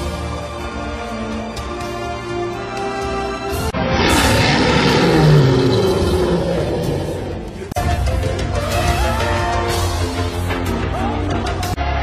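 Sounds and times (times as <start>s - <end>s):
lion roaring: 3.8s - 7.7s.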